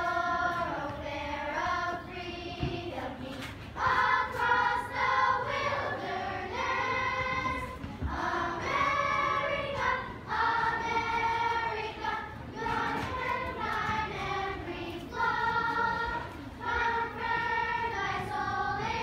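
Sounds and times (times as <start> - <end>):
children's choir singing: 0.0 - 19.0.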